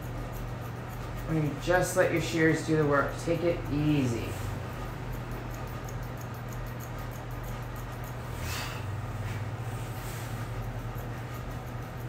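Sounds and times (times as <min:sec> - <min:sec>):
grooming shears snipping hair: 0:00.0 - 0:12.0
low room hum: 0:00.0 - 0:12.0
rustle of hair: 0:08.2 - 0:11.5.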